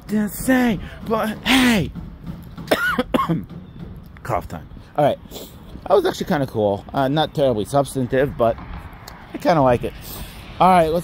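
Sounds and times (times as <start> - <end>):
man coughing: 2.7 - 3.5.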